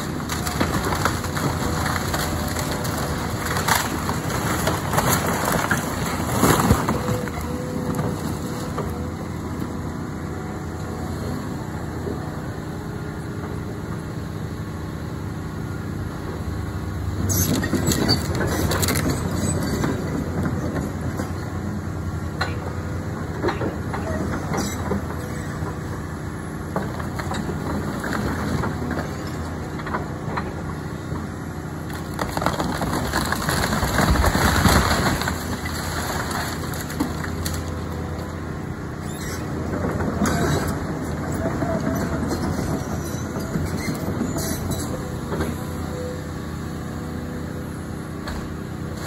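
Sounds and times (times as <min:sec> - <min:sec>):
wood and debris cracking: 0:00.0 - 0:09.0, 0:17.6 - 0:20.7, 0:31.8 - 0:38.3
excavator diesel engine running: 0:00.0 - 0:49.0.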